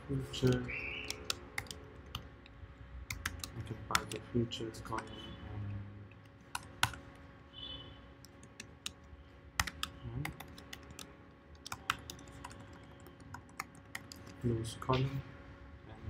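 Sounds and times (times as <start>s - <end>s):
computer keyboard typing: 0.3s - 4.2s, 6.1s - 7.2s, 8.2s - 14.5s.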